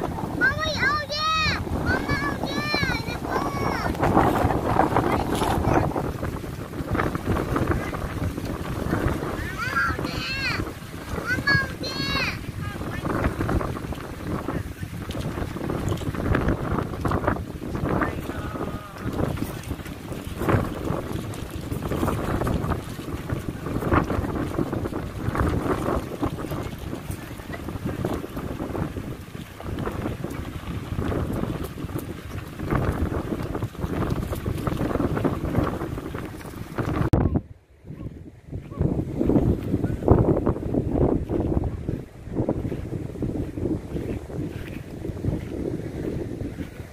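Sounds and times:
gusty wind on microphone: 0:00.0 - 0:46.9.

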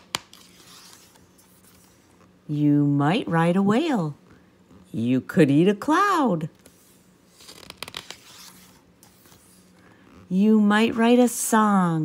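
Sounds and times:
book page turning: 0:00.0 - 0:02.4, 0:06.6 - 0:10.3.

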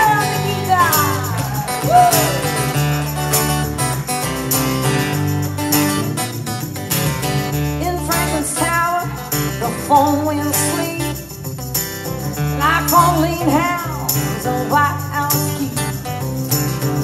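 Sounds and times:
person singing: 0:00.0 - 0:02.7, 0:07.8 - 0:11.2
electric bass: 0:00.0 - 0:17.0
strummed acoustic guitar: 0:00.0 - 0:17.0
tambourine shaken: 0:00.0 - 0:17.0.

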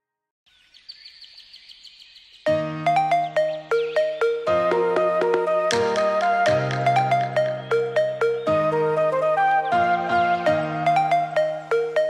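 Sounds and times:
birds chirping: 0:00.5 - 0:12.0.

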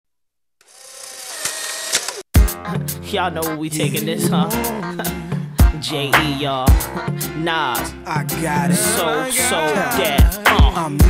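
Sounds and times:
cd player whirring: 0:00.6 - 0:02.3.

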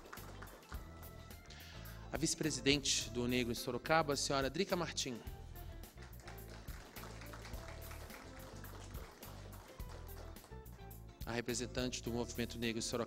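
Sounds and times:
soft instrumental music: 0:00.0 - 0:13.0.

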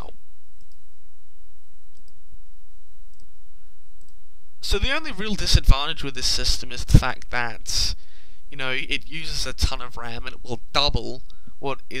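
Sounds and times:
microphone hum and crackle: 0:00.0 - 0:08.3.

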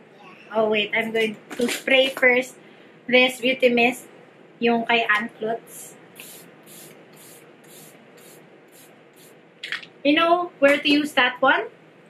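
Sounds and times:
spray bottle hisses: 0:06.2 - 0:09.4.

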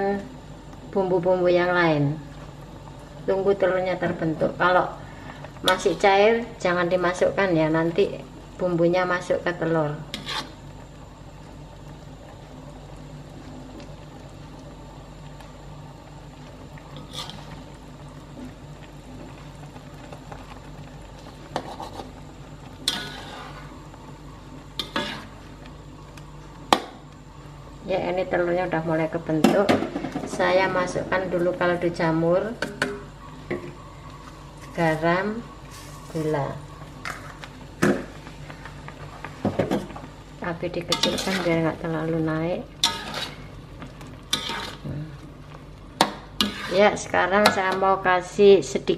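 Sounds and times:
spatula scraping a wok: 0:10.0 - 0:10.6, 0:17.0 - 0:17.6, 0:21.5 - 0:22.2, 0:22.8 - 0:23.9, 0:24.7 - 0:25.6, 0:40.8 - 0:41.8, 0:42.8 - 0:43.6, 0:44.3 - 0:45.1, 0:46.0 - 0:47.8
soup simmering: 0:10.1 - 0:27.9, 0:30.5 - 0:46.9.

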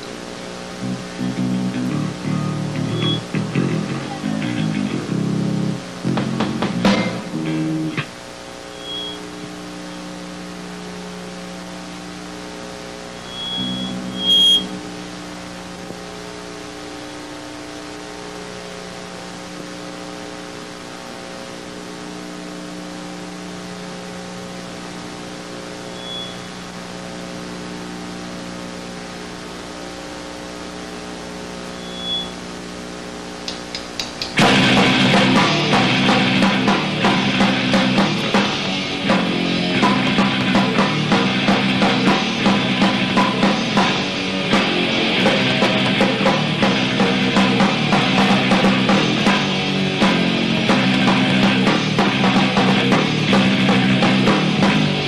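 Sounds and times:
electric guitar notes and chords: 0:00.0 - 0:32.4, 0:33.3 - 0:55.0
amplifier hum: 0:00.0 - 0:55.0
high-pitched amplifier squeals: 0:01.9 - 0:03.3, 0:08.6 - 0:09.5, 0:13.0 - 0:14.9, 0:25.7 - 0:26.9, 0:31.6 - 0:32.5.

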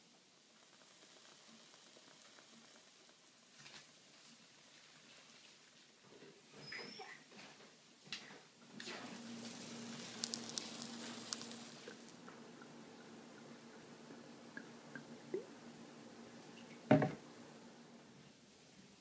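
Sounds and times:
pancake sizzling in oil: 0:00.0 - 0:06.0, 0:08.7 - 0:18.0.

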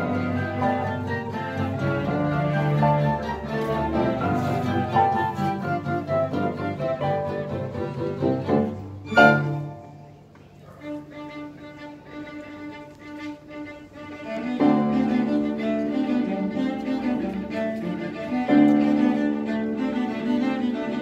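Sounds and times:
string orchestra with guitar: 0:00.0 - 0:21.0.

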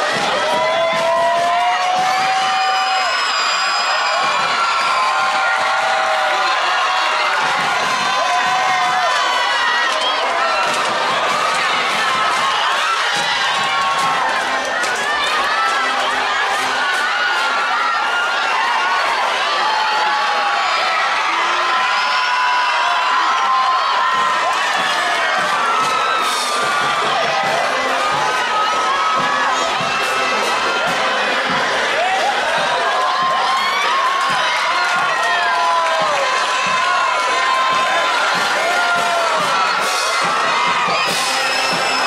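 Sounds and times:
crowd cheering and shouting: 0:00.0 - 0:42.0.

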